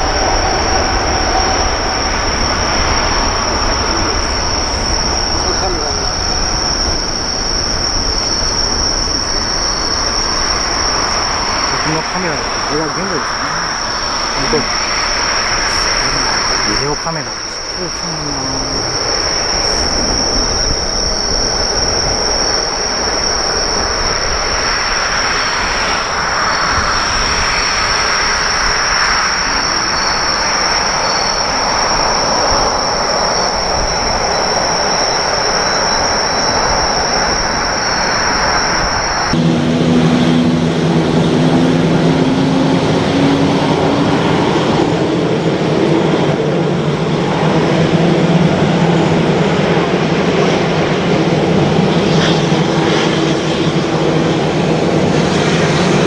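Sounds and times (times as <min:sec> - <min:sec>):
insects chirping: 0:00.0 - 0:56.0
jet engine roar at takeoff: 0:00.0 - 0:56.0
jet engines humming while taxiing: 0:00.0 - 0:56.0.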